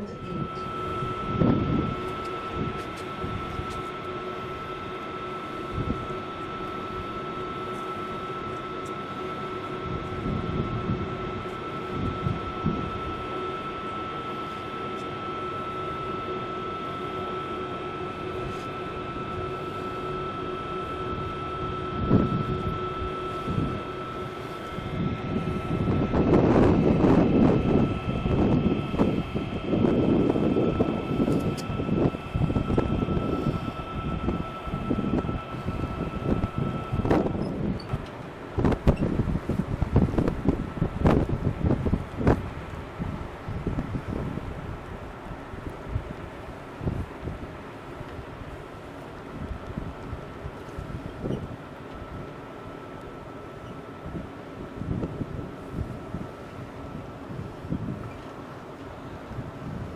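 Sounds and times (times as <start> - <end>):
faint high tone: 0.0 - 1.1
wind buffeting microphone: 0.0 - 4.7, 5.6 - 6.1, 9.8 - 13.3, 20.8 - 52.4, 53.8 - 58.2, 58.9 - 59.9
steady hum: 0.0 - 59.9.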